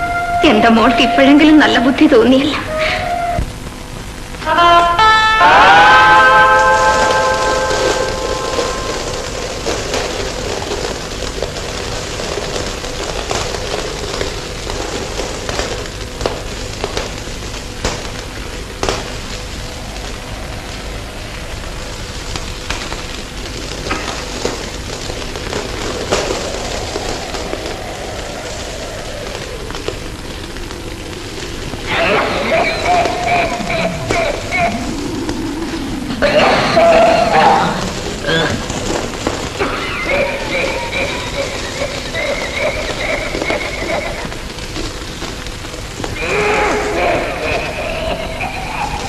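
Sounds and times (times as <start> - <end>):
film soundtrack hiss and crackle: 0.0 - 49.0.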